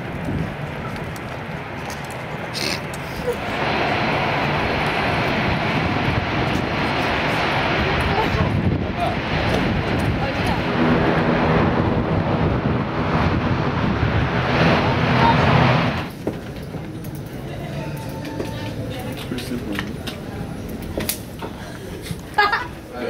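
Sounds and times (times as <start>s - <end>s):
aircraft engine noise: 0.0s - 22.9s.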